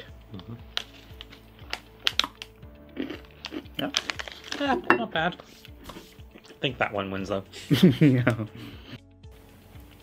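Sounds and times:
plastic wrapper crinkling: 3.8 - 4.9.

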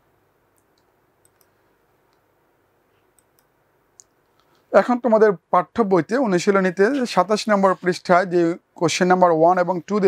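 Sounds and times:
faint short clicks: 0.5 - 1.5.

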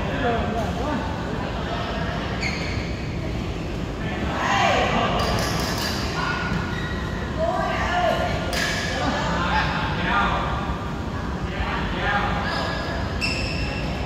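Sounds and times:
echoing voices talking and calling: 0.0 - 14.0.

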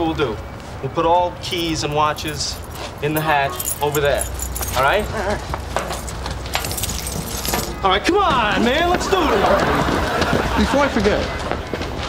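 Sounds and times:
keys and watches jingling: 1.6 - 7.8.

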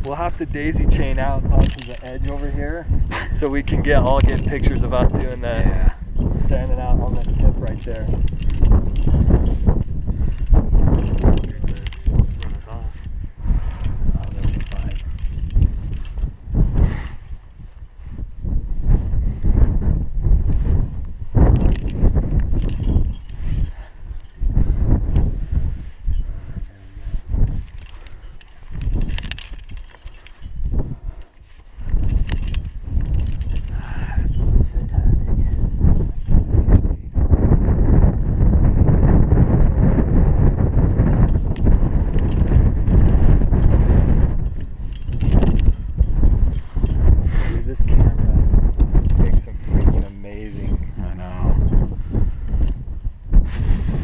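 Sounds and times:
climbing rope rustling and knocking: 0.0 - 18.2, 20.4 - 34.9, 40.4 - 53.0
wind buffeting microphone: 0.0 - 54.0.

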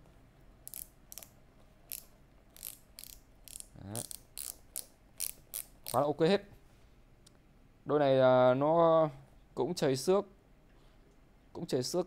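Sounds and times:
shoe dial ratchet clicks: 0.6 - 6.0.

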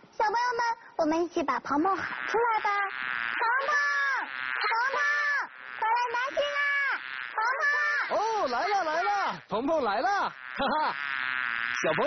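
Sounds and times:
high-pitched voices calling out: 1.6 - 12.0.

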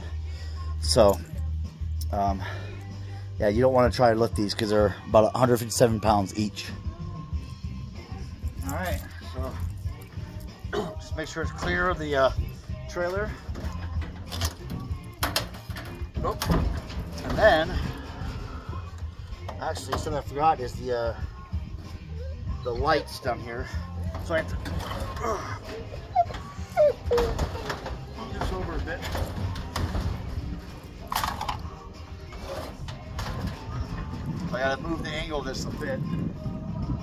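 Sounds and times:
steel cage rattling: 8.3 - 22.1, 22.7 - 35.8.

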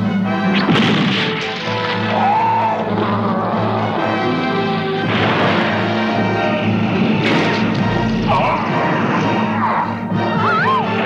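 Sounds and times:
dramatic cartoon action music: 0.0 - 11.0
sharp impact: 0.6 - 2.1
noisy crash: 0.6 - 2.2, 5.0 - 6.0, 7.1 - 8.0.

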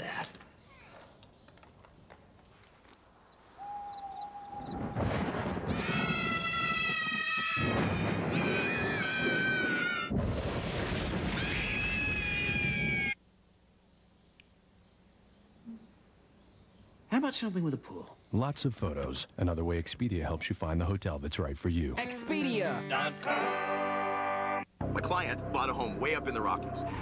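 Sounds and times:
boys screaming with excitement: 3.6 - 10.1, 11.3 - 13.2.

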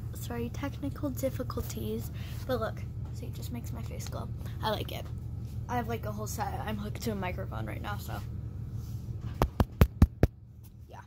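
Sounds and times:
quick sharp taps: 9.4 - 10.4.

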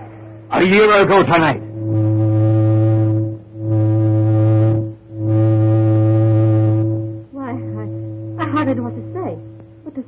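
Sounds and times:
deep horn blasts: 0.0 - 9.8.

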